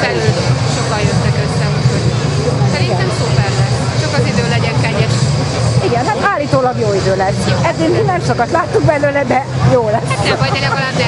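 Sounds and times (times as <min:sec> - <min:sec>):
low engine drone: 0:00.0 - 0:11.0
people talking: 0:00.0 - 0:11.0.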